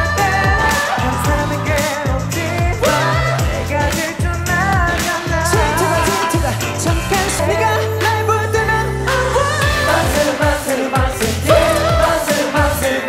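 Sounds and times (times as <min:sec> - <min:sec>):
sliding bass notes: 0:00.0 - 0:10.3, 0:11.0 - 0:13.0
male vocal singing with vibrato: 0:00.0 - 0:13.0
pop backing track with driving beat: 0:00.0 - 0:13.0.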